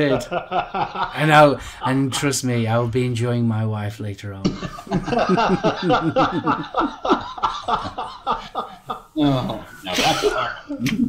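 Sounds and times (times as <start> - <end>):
men laughing: 0.0 - 2.1, 4.4 - 11.0.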